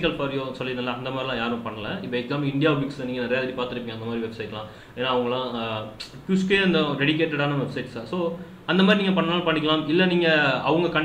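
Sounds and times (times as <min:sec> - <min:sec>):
man speaking: 0:00.0 - 0:11.0.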